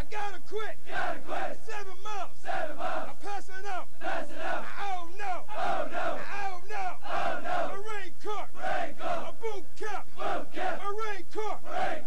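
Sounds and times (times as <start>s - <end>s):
group shouting a cadence: 0.9s - 12.0s.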